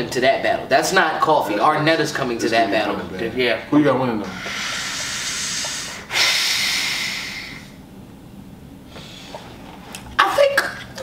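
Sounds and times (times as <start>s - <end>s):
man breathing in: 4.2s - 7.8s, 8.9s - 9.6s
man breathing out: 4.2s - 7.8s.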